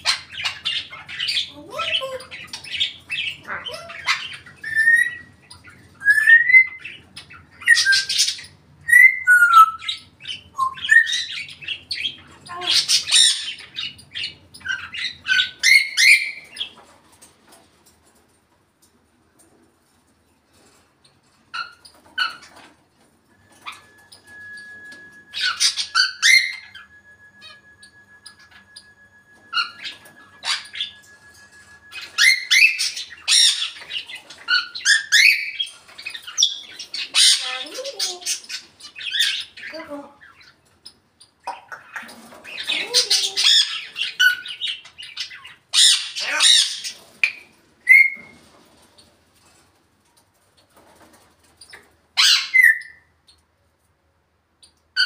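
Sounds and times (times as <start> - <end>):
parrot squawking and whistling: 0.0 - 16.5, 23.4 - 40.4, 41.5 - 48.3, 52.2 - 53.1.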